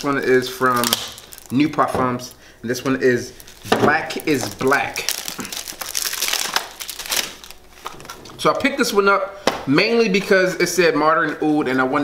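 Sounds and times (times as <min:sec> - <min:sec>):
crinkling plastic wrap: 0:00.0 - 0:02.0, 0:02.8 - 0:08.4.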